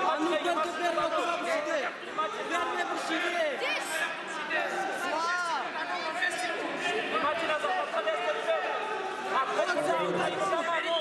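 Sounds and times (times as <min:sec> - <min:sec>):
people shouting in echoing hall: 0:00.0 - 0:11.0.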